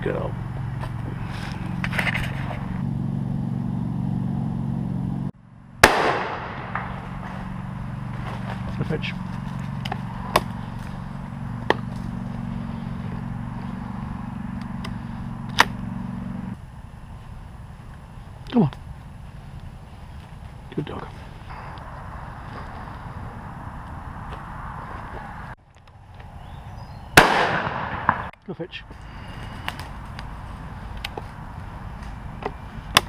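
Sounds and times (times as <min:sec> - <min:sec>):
loud shotgun shot: 0:05.8 - 0:07.0, 0:27.2 - 0:28.3.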